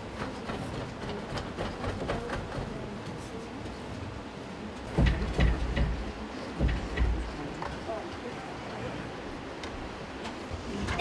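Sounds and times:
dull knocks: 0:04.9 - 0:07.3.

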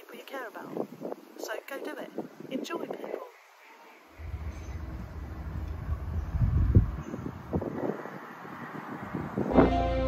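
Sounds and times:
wind buffeting microphone: 0:00.5 - 0:03.4, 0:04.2 - 0:10.0.

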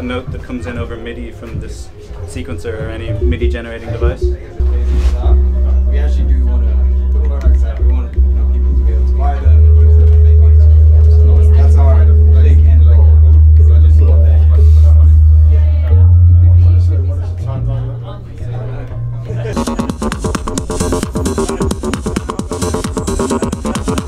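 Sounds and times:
deep bass synthesizer notes: 0:02.7 - 0:24.0.

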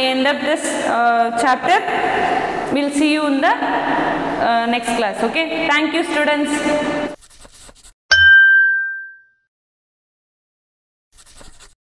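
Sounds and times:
bright bell ding: 0:08.1 - 0:09.4.

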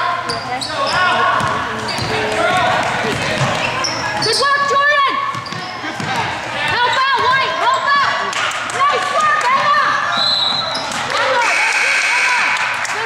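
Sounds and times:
basketball bouncing on wooden floor: 0:00.9 - 0:03.6.

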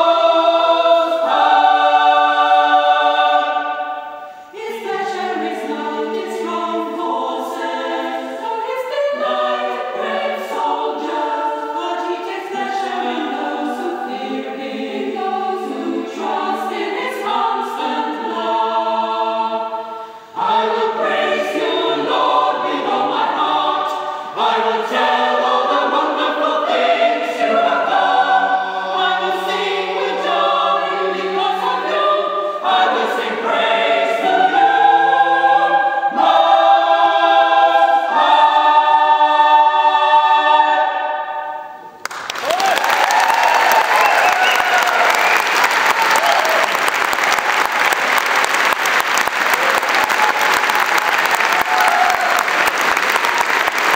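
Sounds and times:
choir singing a cappella: 0:00.0 - 0:42.0
audience applause: 0:42.0 - 0:53.9.

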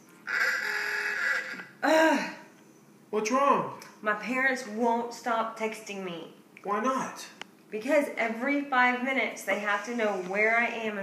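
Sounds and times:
person groaning: 0:01.8 - 0:02.5.

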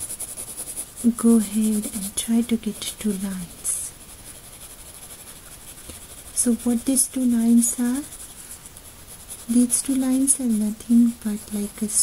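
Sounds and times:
pencil rubbing on paper: 0:00.0 - 0:12.0
steady background hiss: 0:00.0 - 0:12.0.

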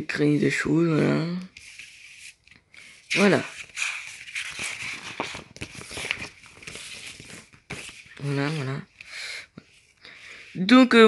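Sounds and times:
paper pages turning: 0:01.4 - 0:10.6.

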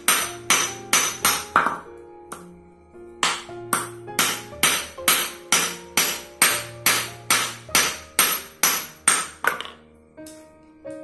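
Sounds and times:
hammer ringing on anvil: 0:03.2 - 0:09.7.

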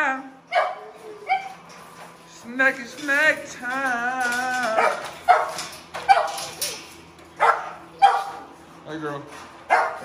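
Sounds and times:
dogs barking: 0:00.5 - 0:01.7, 0:04.7 - 0:08.6, 0:09.6 - 0:10.0.

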